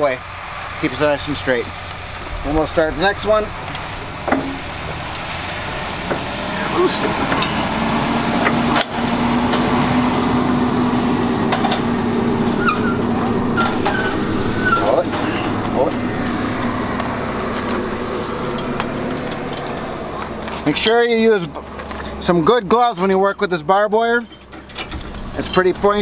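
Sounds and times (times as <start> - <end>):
engine running with low hum: 0.0 - 26.0.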